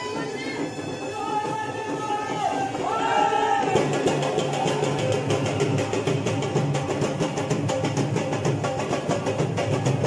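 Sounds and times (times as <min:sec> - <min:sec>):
drums beating fast rhythm: 0:00.0 - 0:10.0.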